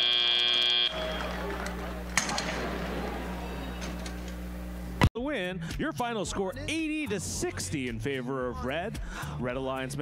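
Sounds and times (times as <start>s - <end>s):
arena buzzer: 0.0s - 4.6s.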